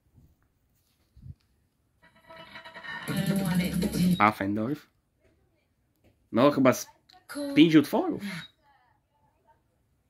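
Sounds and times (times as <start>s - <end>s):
music from boombox: 2.1s - 4.2s.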